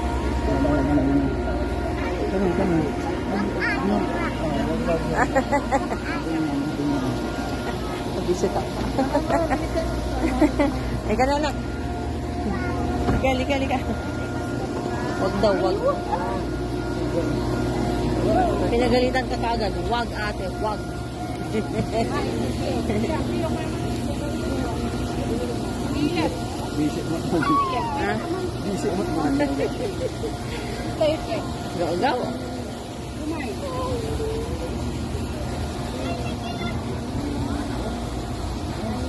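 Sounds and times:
faint voices talking: 0:00.0 - 0:39.0
people chattering: 0:00.0 - 0:39.0.

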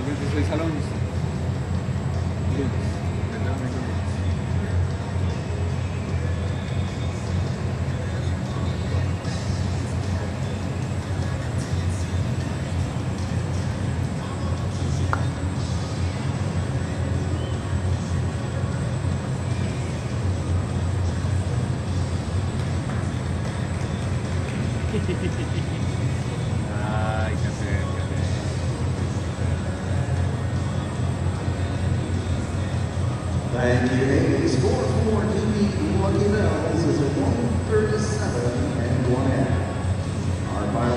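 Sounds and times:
indoor arena low rumble: 0:00.0 - 0:40.9.

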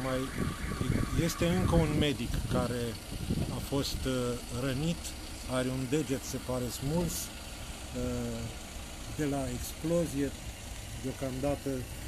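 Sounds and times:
man's drawn-out hesitation sound: 0:00.0 - 0:08.6.

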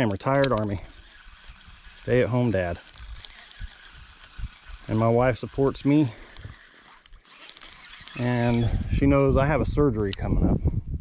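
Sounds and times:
man talking: 0:02.0 - 0:02.8, 0:04.9 - 0:06.2, 0:08.2 - 0:10.6.

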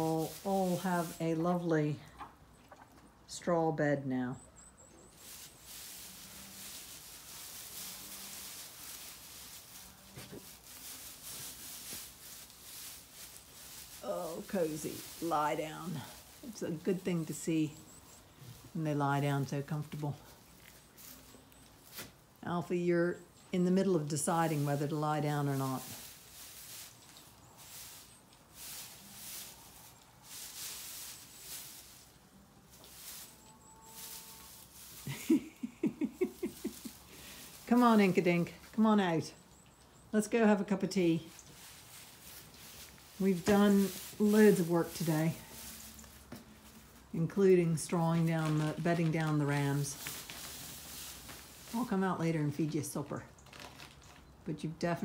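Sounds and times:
straw rustling as dog digs: 0:00.0 - 0:01.7, 0:05.1 - 0:22.3, 0:23.6 - 0:39.1, 0:40.3 - 0:54.1
woman laughing: 0:35.0 - 0:37.1.

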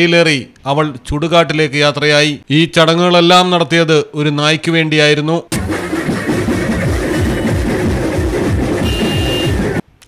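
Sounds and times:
distorted procession music on loudspeakers: 0:05.5 - 0:09.8.

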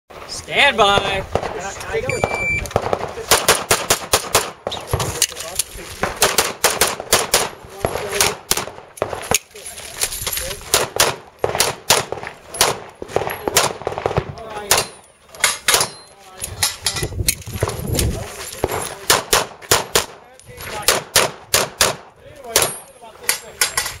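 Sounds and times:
pistol shots fired rapidly: 0:02.7 - 0:05.1, 0:06.0 - 0:09.3, 0:10.7 - 0:15.0, 0:18.6 - 0:20.2, 0:20.8 - 0:22.7.

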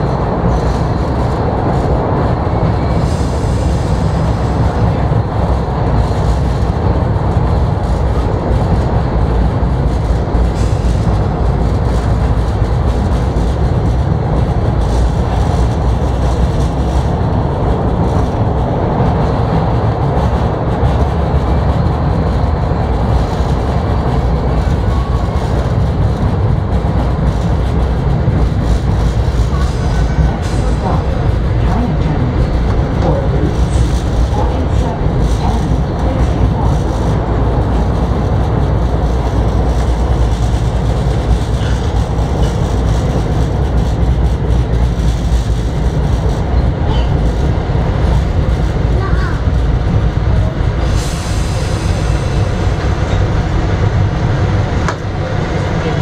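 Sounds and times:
subway train rumbling on rails: 0:00.0 - 0:56.0.

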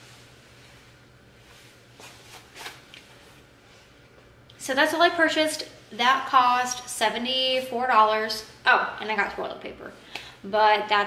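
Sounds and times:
faint rustles of clothes and hair: 0:00.0 - 0:04.4.

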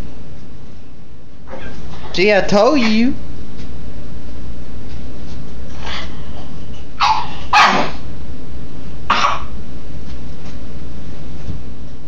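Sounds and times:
dog barking sharply: 0:07.0 - 0:08.0.

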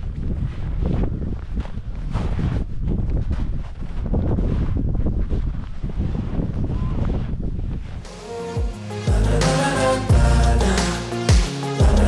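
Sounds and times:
wind rumbling on microphone: 0:00.0 - 0:08.1
footsteps in snow: 0:00.0 - 0:08.5.

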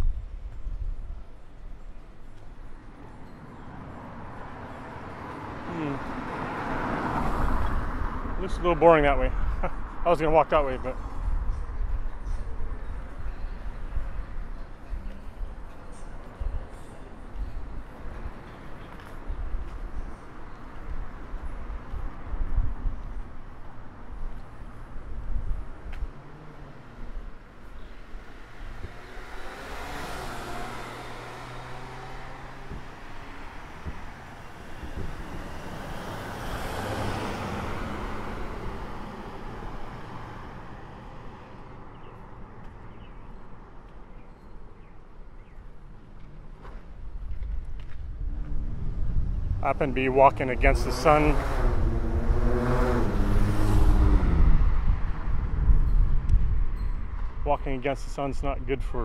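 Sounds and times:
motor vehicles passing by: 0:03.6 - 0:59.0.

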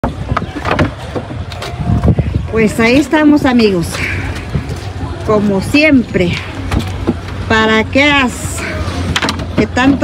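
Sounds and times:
wooden planks knocking: 0:00.0 - 0:01.7.

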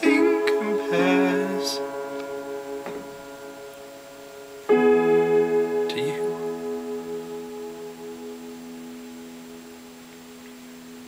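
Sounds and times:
keyboard chords: 0:00.0 - 0:11.0.

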